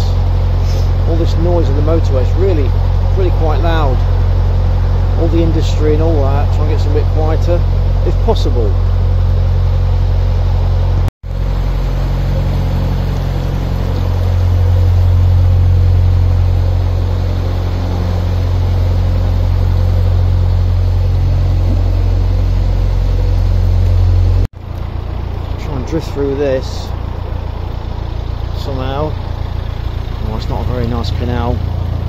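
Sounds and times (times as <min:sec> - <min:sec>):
diesel boat engine chugging: 0:00.0 - 0:32.0
motorway traffic roar: 0:00.0 - 0:32.0.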